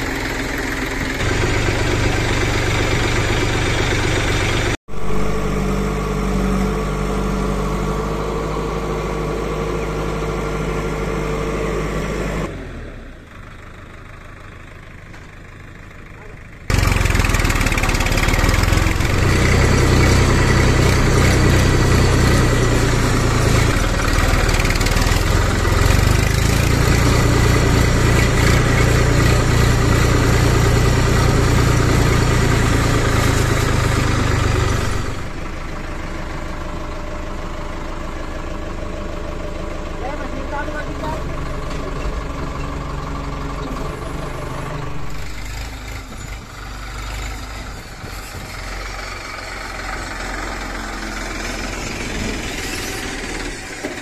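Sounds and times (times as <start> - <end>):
diesel tractor engine running: 0.0 - 54.0.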